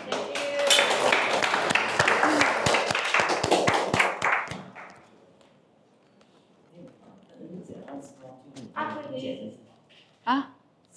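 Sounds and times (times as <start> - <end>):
people clapping: 0.0 - 5.1.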